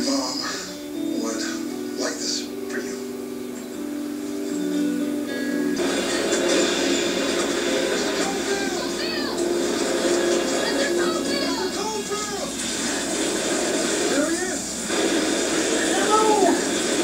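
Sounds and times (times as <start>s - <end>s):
noisy background: 0.0s - 17.0s
sustained music chords: 0.6s - 12.6s
faint voices: 15.6s - 17.0s.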